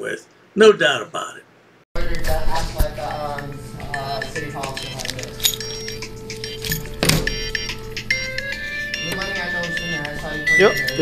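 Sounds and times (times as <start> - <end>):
background music: 2.0 - 11.0
keys clattering onto table: 4.8 - 5.9, 6.5 - 7.3.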